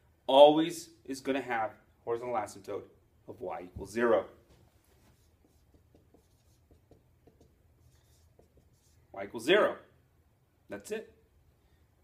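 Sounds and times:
marker writing on whiteboard: 4.5 - 9.2.

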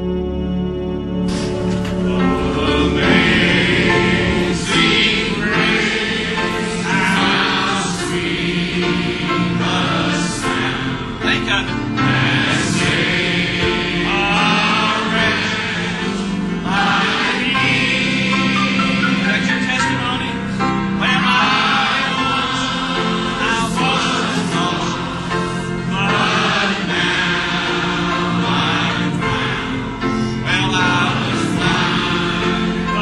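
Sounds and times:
choir singing a hymn: 0.0 - 33.0.

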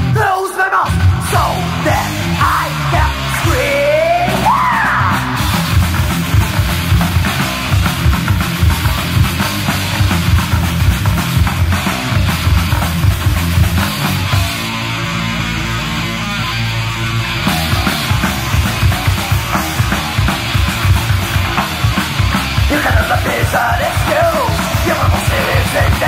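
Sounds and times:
drums and bass fast beat: 0.0 - 26.0
heavy metal band playing: 0.0 - 26.0.

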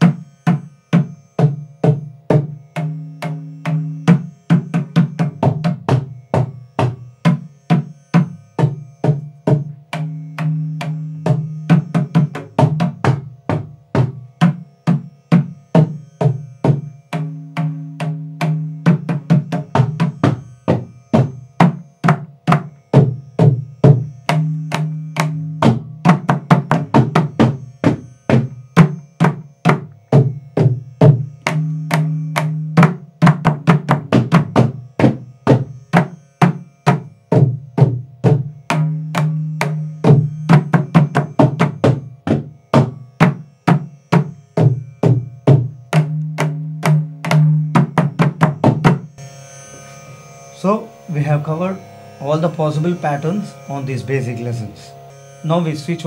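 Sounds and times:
mridangam drumming: 0.0 - 49.2.

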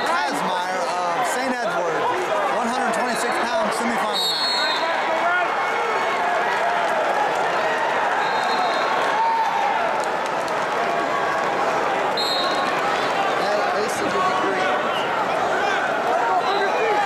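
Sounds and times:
crowd talking and calling out: 0.0 - 17.0.

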